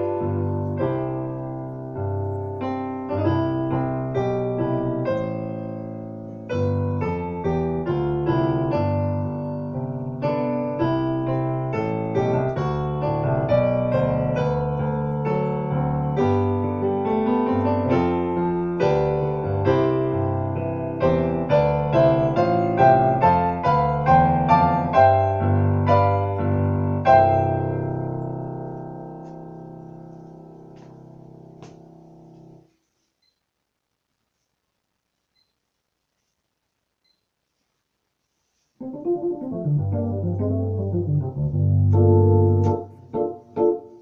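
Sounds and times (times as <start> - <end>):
digital piano chords and melody: 0.0 - 32.7, 38.8 - 44.0.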